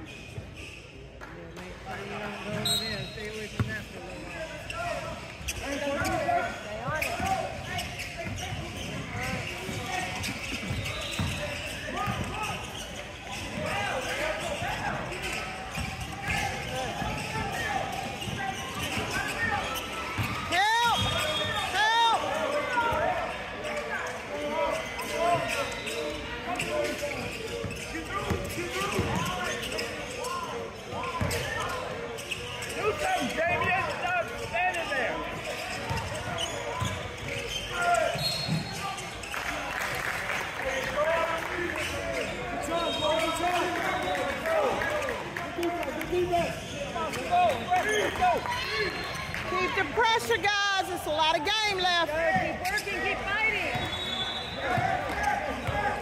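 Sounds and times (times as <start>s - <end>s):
sneakers squeaking: 0.0s - 1.1s, 2.4s - 56.0s.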